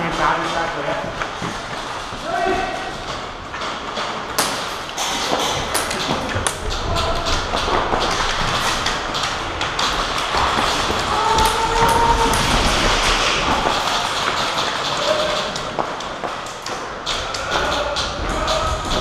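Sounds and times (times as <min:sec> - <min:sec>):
distant shouting voices: 0:10.8 - 0:19.0.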